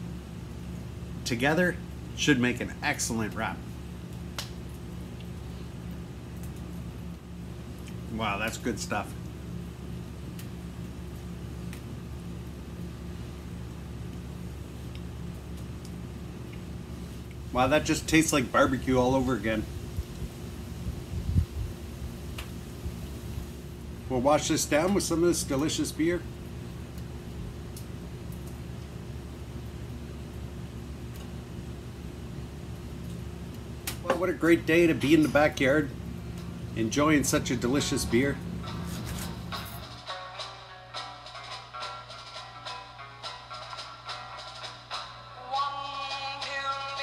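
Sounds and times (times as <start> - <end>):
low mechanical hum: 0.0 - 47.0.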